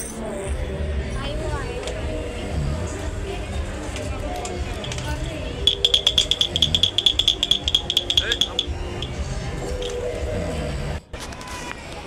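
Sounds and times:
wooden toy clicking across table: 5.7 - 9.2.

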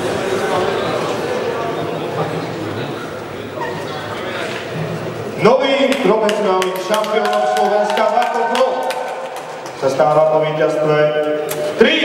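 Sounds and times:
announcer's amplified voice calling: 5.4 - 9.2.

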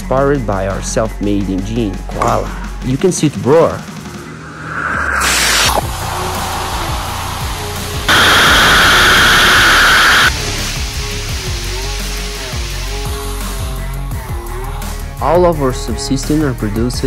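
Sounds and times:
faint background music: 0.0 - 4.3, 10.3 - 17.0
rocket motor roaring: 4.3 - 13.6.

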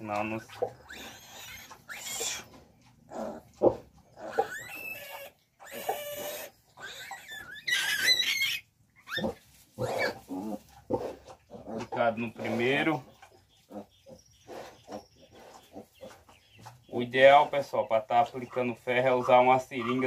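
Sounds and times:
piglet squealing: 0.4 - 2.5, 4.2 - 10.3.

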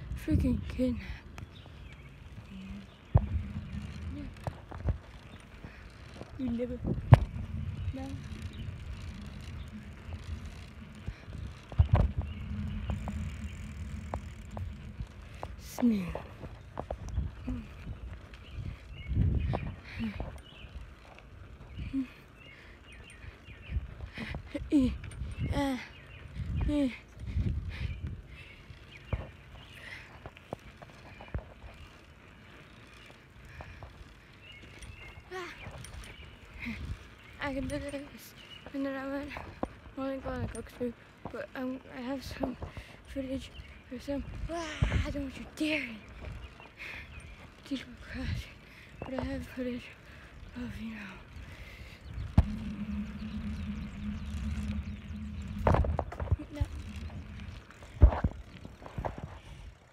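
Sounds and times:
wind rumble on microphone: 0.0 - 59.9.

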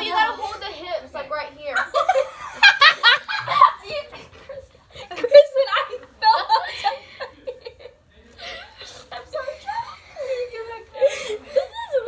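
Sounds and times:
young people laughing: 1.7 - 12.0.

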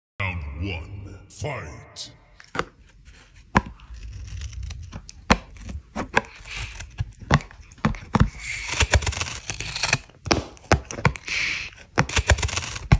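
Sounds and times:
cardboard scraping and tearing: 2.8 - 12.9
cat chewing cardboard: 2.8 - 12.9.

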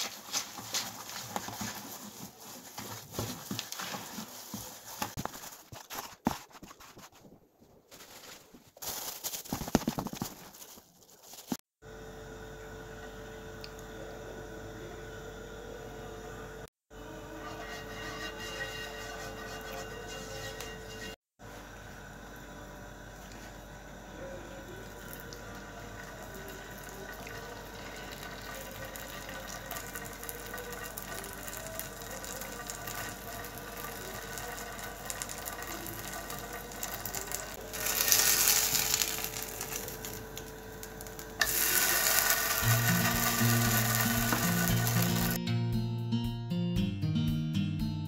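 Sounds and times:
batter sizzling in hot oil: 25.1 - 45.4.

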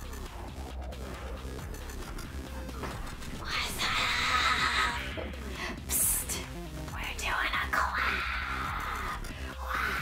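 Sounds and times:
background music: 0.0 - 10.0
women's breathy voices: 7.6 - 10.0.

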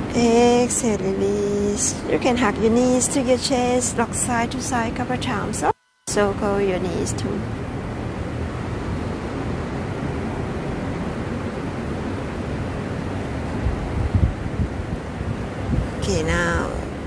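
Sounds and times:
wind buffeting microphone: 7.5 - 17.0.

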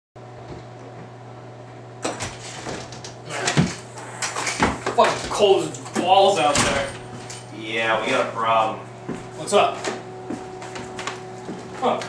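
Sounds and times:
electrical hum with hiss: 0.2 - 12.0.

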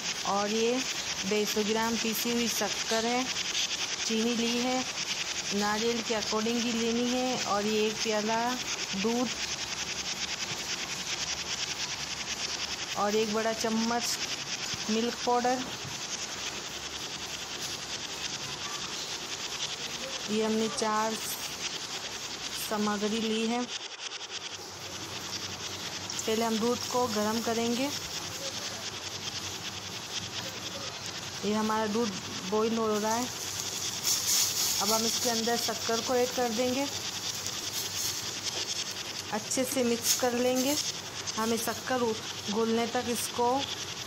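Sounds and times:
insects chirring: 0.0 - 44.0
milk simmering in steel pot: 0.0 - 44.0.

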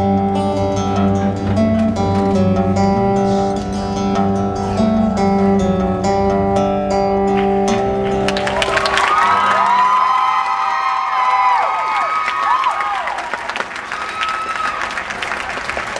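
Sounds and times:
acoustic guitar chord ringing: 0.0 - 9.9
audience applause and cheering: 8.0 - 15.9.

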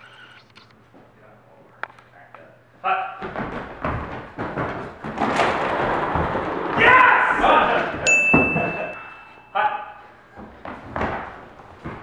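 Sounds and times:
footsteps running on wooden floor: 3.2 - 8.9, 10.4 - 12.0.

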